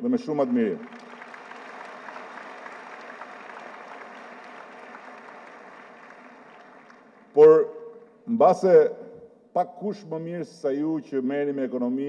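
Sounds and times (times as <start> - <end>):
audience applauding: 0.2 - 7.5.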